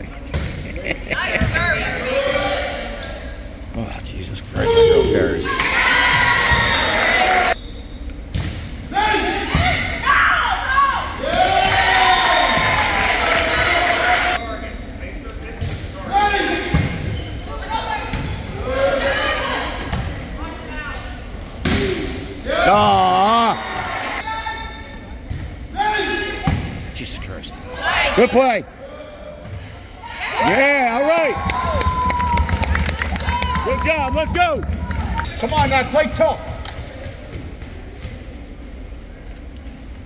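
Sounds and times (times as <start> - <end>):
shouts from players and spectators: 30.0 - 35.3.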